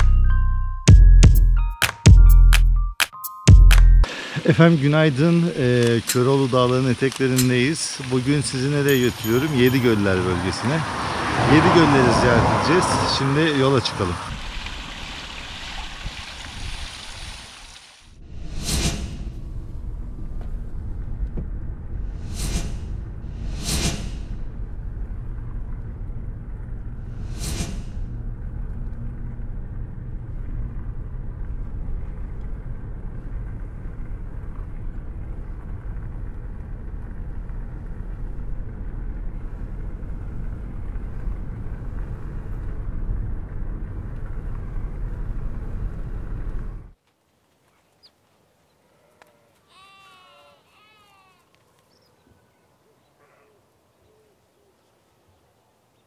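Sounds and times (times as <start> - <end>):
open-air ambience: 2.7 - 56.0
car driving on rough road: 4.0 - 47.0
sheep bleat: 49.2 - 51.4.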